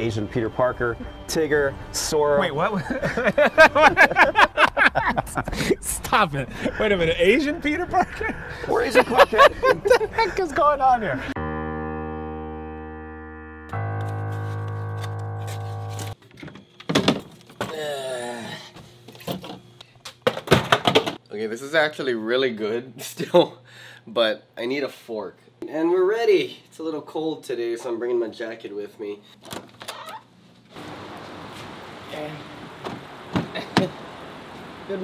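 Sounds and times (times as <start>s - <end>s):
outdoor background hiss: 0.0s - 11.2s, 16.8s - 29.5s, 30.2s - 35.0s
held keyboard chord: 11.4s - 16.2s
wavering pitched sound: 11.4s - 16.2s.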